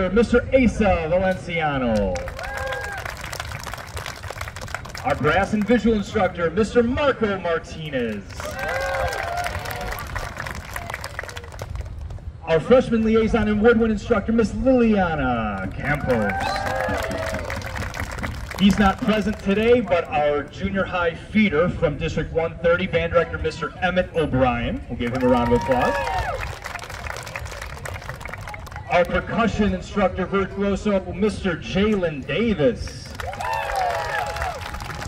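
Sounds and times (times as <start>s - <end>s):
crowd applauding: 2.0s - 5.9s, 8.0s - 12.2s, 15.6s - 20.0s, 25.0s - 29.1s, 33.0s - 35.0s
man talking: 5.0s - 8.5s, 12.4s - 16.4s, 18.6s - 26.0s, 28.9s - 33.2s.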